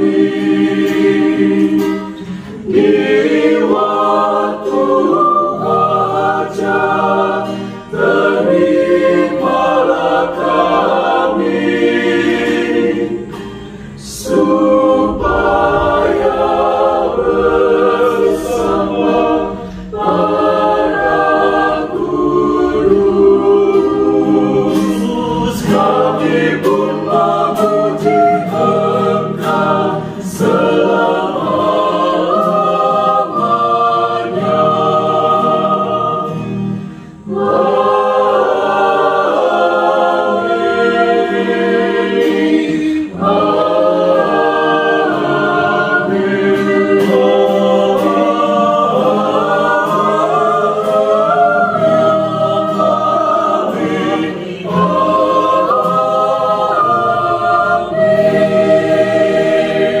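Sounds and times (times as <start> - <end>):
choir singing a hymn: 0.0 - 60.0.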